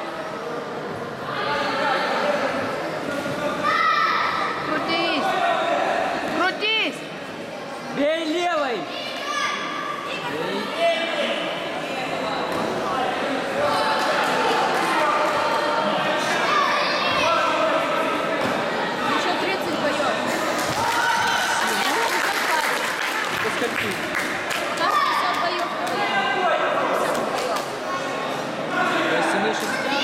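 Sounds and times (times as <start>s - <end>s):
voices shouting in echoing hall: 0.0s - 6.4s, 8.4s - 30.0s.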